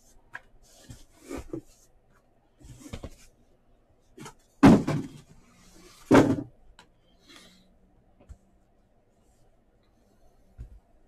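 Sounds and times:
cardboard boxes bumping on table: 4.2s - 5.2s, 6.1s - 6.5s
loud thumps of boxes: 4.6s - 5.3s, 6.1s - 6.5s.

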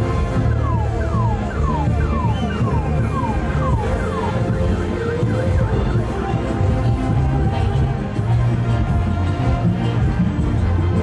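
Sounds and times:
festival band music: 0.0s - 11.0s.

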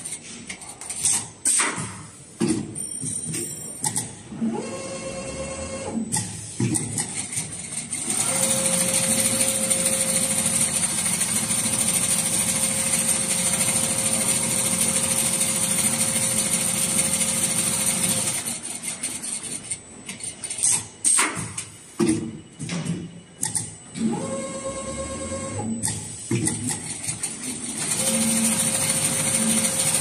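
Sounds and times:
sewing machine humming: 7.6s - 19.5s, 27.2s - 30.0s.

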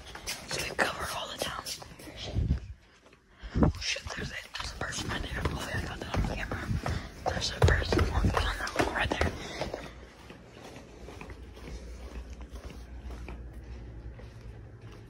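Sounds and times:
hushed whispering: 0.5s - 2.5s, 3.7s - 9.3s.

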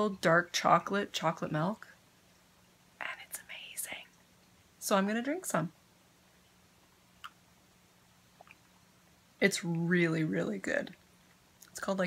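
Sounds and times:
woman whispering: 3.0s - 4.2s.

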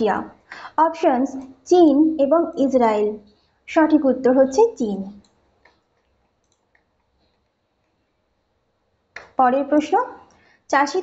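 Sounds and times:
computer mouse clicks: 5.2s - 8.0s.

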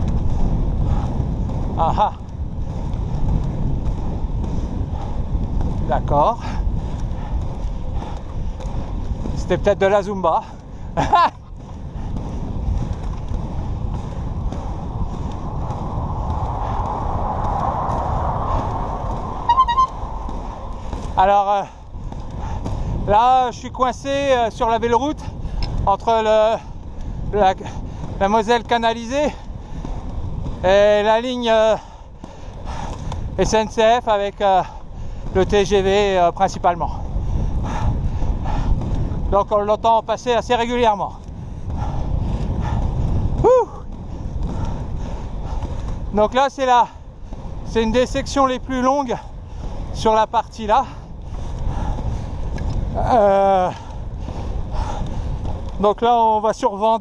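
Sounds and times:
inline skate wheels on asphalt: 0.0s - 57.0s
wind on microphone: 0.0s - 57.0s
short high notes: 19.5s - 20.0s.

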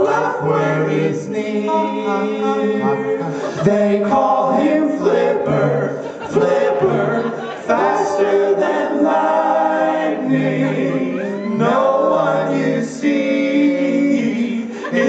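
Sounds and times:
male vocal group singing harmony: 0.0s - 15.0s.

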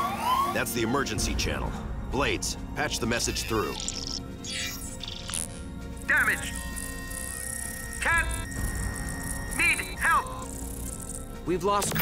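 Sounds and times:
background music: 0.0s - 12.0s
steady electronic tones: 3.0s - 12.0s
warbling voice-like chirps: 3.3s - 11.4s.

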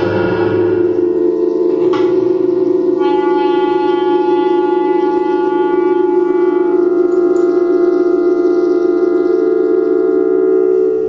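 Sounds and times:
clarinet holding long note: 0.0s - 11.0s.

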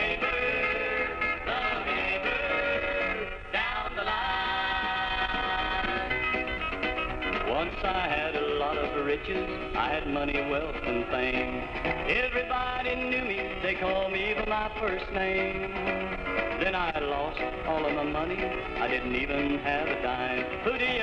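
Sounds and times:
instrumental country band: 0.0s - 21.0s
sliding guitar notes: 0.0s - 21.0s.

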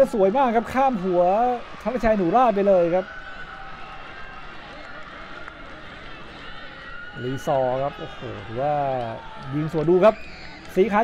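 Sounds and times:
crowd hubbub and shouts: 0.0s - 11.0s.

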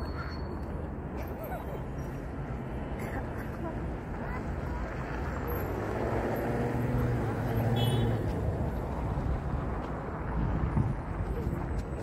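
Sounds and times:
traffic: 0.0s - 12.0s
wind: 0.0s - 12.0s
vehicle engine hum: 0.1s - 12.0s.

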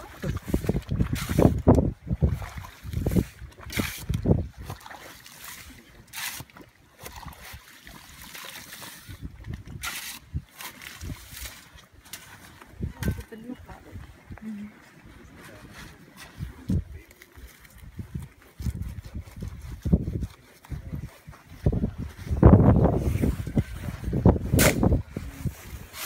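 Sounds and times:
shovel scraping in wet sand: 0.2s - 1.7s, 2.3s - 13.3s, 22.9s - 26.0s.

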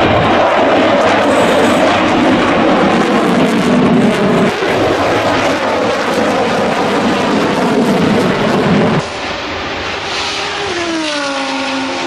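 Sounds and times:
fighter jet engines roaring: 0.0s - 12.0s.

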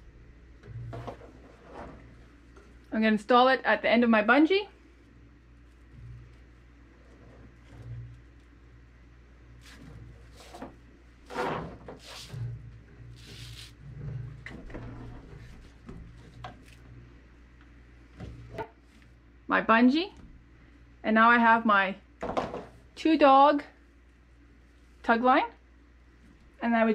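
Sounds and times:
low steady hum: 0.0s - 26.9s.

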